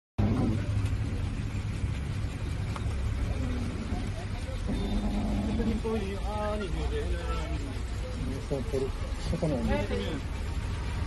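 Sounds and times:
faint voices: 0:00.2 - 0:10.7
vehicle engine rumbling: 0:00.2 - 0:11.0.

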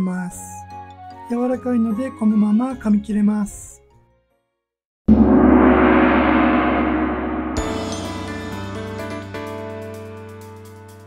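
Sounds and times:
gong ringing: 0:05.1 - 0:09.7
bright chiming jingle: 0:07.6 - 0:09.2.

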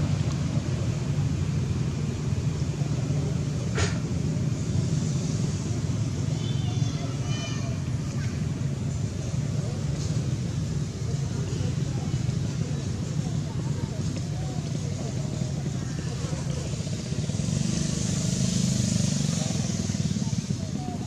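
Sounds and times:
faint voices: 0:00.0 - 0:21.0.

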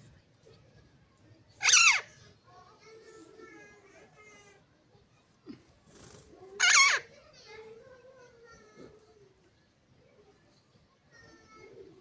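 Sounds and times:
parakeet screeching: 0:01.6 - 0:02.1, 0:06.6 - 0:07.1.

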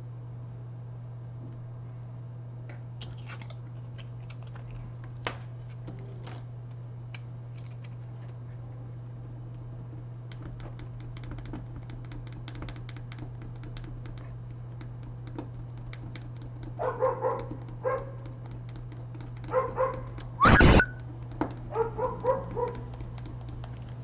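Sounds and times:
steady low hum: 0:00.0 - 0:24.0
dog barking loudly: 0:16.8 - 0:18.2, 0:19.5 - 0:20.1, 0:21.7 - 0:22.8
dog whining and yapping: 0:19.6 - 0:20.9.

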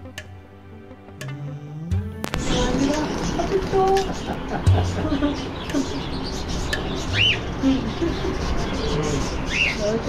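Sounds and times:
pet birds chirping: 0:03.0 - 0:10.0.

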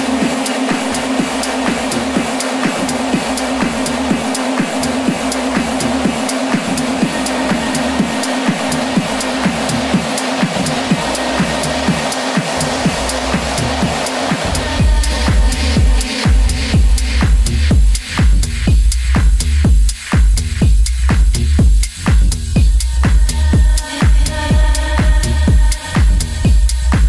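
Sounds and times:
tech house music: 0:00.0 - 0:27.0.

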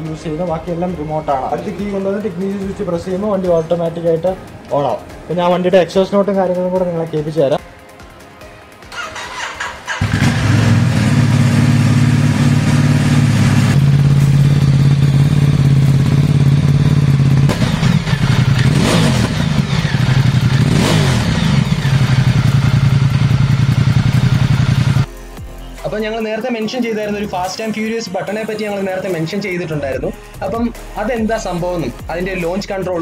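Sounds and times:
motorcycle engine idling: 0:09.0 - 0:25.1
engine throttle blips: 0:10.0 - 0:25.1.

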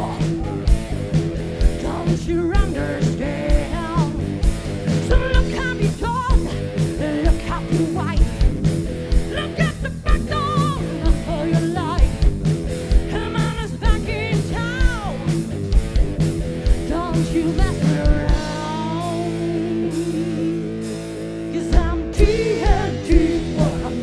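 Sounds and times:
person singing: 0:00.0 - 0:00.8, 0:01.7 - 0:04.2, 0:05.0 - 0:08.5, 0:09.3 - 0:12.2, 0:13.1 - 0:15.3, 0:16.8 - 0:20.8, 0:21.5 - 0:24.0
drums: 0:00.0 - 0:24.0
live rock band playing: 0:00.0 - 0:24.0.

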